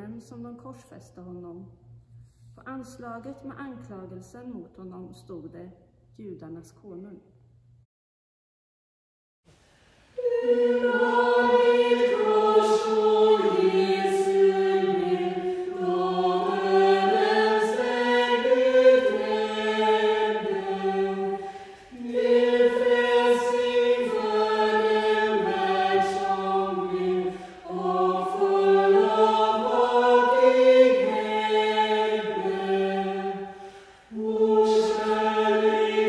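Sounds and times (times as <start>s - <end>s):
small choir singing: 10.1s - 36.0s.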